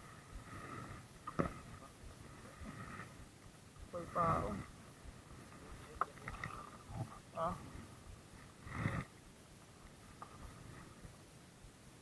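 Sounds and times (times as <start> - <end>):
water against boat hull: 0.2 - 11.2.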